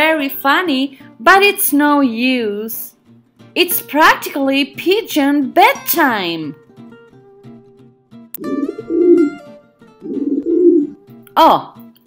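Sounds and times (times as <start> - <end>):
soft background music: 0.0 - 12.0
pigeon cooing: 8.4 - 9.4, 10.0 - 11.0.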